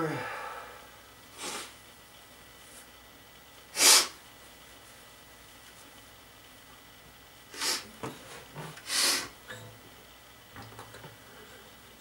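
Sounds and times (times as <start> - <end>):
forceful nose breaths: 3.7 - 4.2, 8.8 - 9.3.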